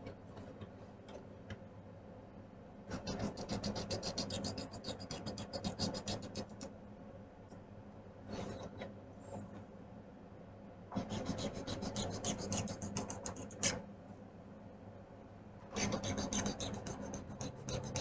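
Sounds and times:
coloring strokes scratching paper: 2.9s - 6.6s, 11.0s - 13.8s, 15.8s - 18.0s.

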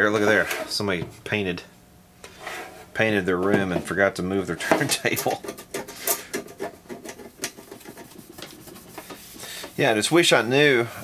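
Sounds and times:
cloth rubbing plastic cover: 6.6s - 11.0s.

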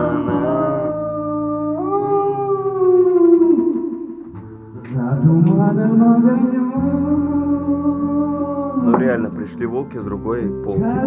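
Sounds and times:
man singing a long note: 0.0s - 4.2s, 4.8s - 9.6s, 10.8s - 11.0s.

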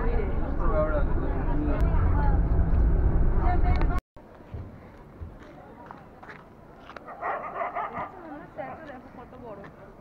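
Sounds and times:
bus engine and road rumble: 0.0s - 10.0s
open-air ambience: 0.0s - 10.0s.

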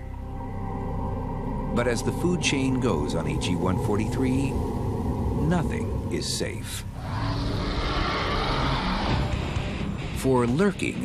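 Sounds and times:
steady low hum: 0.0s - 10.2s.

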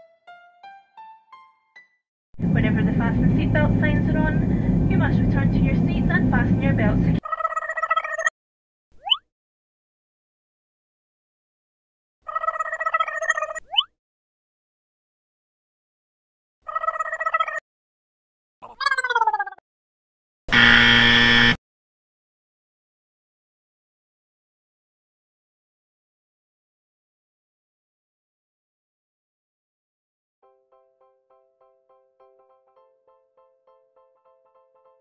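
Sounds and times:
cabin announcement: 2.4s - 7.2s
low drone of aircraft engines: 2.4s - 7.2s
steady tone: 2.4s - 7.2s
wrong-answer buzzer: 20.5s - 21.6s.

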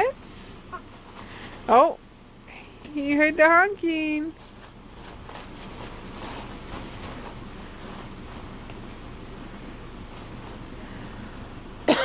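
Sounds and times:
soft scrapes: 4.3s - 8.6s
plastic bag crinkling: 4.3s - 8.7s.

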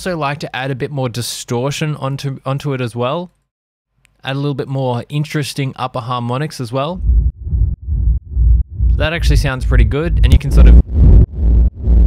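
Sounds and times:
pulsing distorted reverb bass: 7.0s - 12.0s.

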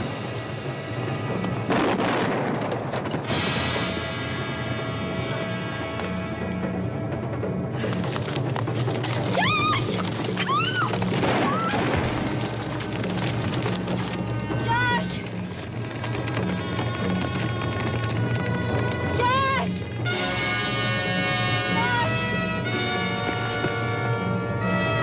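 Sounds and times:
horses galloping: 0.0s - 25.0s
dramatic orchestral music: 3.2s - 25.0s.

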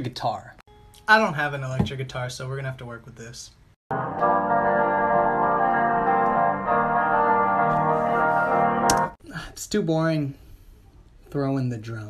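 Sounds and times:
guitar chords with heavy effects: 3.9s - 9.2s.

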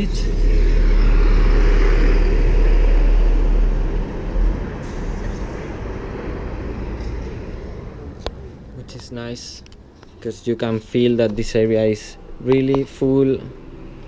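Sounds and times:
heavy vehicle engine rumble: 0.0s - 9.0s.

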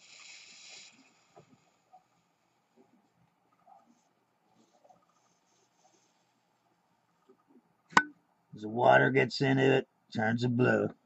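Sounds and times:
faint hiss of powder wetting: 0.0s - 6.7s.

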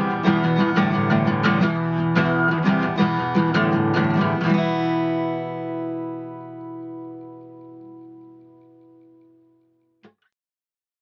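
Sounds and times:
acoustic guitar chord ringing: 0.0s - 9.7s.

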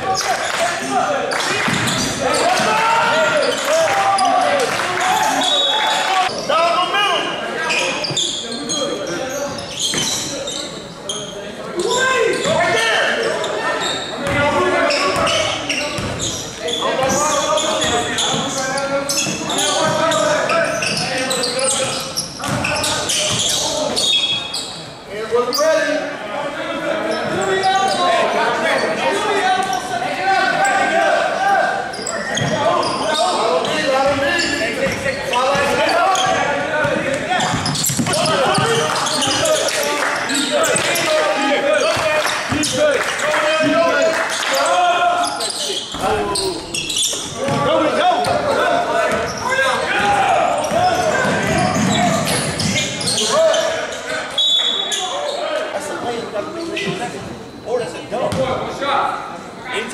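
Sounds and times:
indistinct shouting and chatter: 0.0s - 59.9s.

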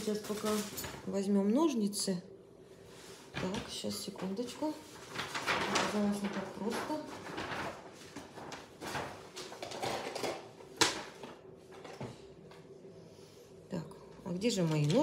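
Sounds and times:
hands rummaging through items: 0.0s - 1.2s, 3.3s - 12.1s.

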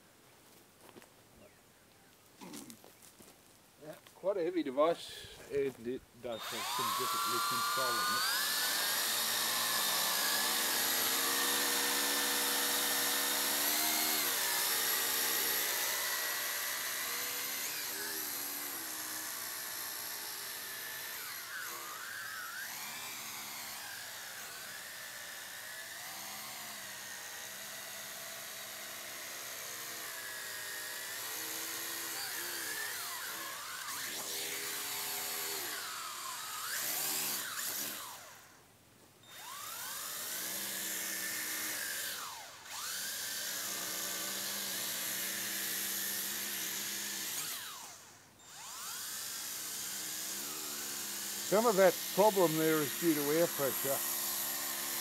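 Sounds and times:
drone motors whining: 6.3s - 38.6s, 39.2s - 55.0s.

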